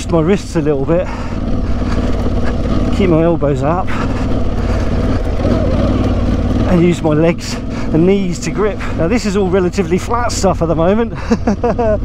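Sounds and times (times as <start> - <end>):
motorcycle engine running on gravel: 0.0 - 12.0.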